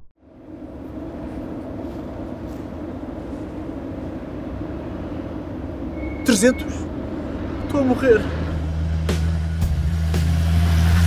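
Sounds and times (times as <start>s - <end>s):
engine hum: 0.0s - 11.0s
road traffic rumble: 0.2s - 11.0s.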